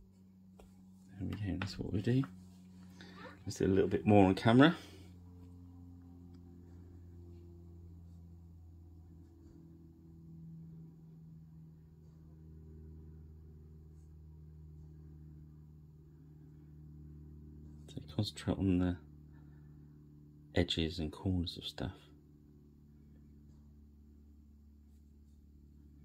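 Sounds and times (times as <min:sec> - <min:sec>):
faint low hum: 0:00.0 - 0:26.0.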